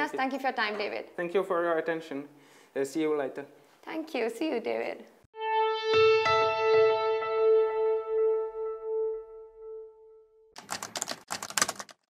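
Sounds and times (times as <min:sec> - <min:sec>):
rapid clatter of clicks: 0:10.6 - 0:12.0.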